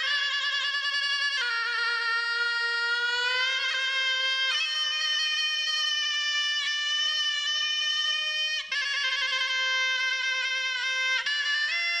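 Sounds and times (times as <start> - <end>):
wind instrument slow melody: 0.0 - 12.0.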